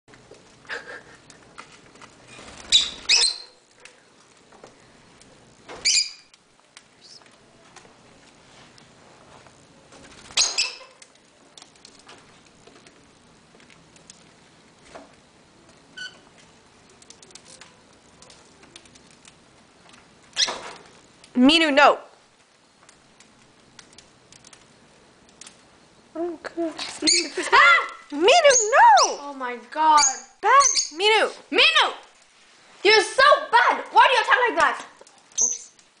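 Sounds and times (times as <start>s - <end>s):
birds clicking and tapping on perches: 1.2s - 4.8s, 10.0s - 13.0s, 13.6s - 21.3s, 22.4s - 25.7s, 33.9s - 36.0s
lovebirds giving shrill calls: 2.4s - 3.6s, 5.8s - 6.3s, 10.3s - 11.0s, 26.8s - 29.2s, 29.9s - 31.3s, 35.3s - 35.8s.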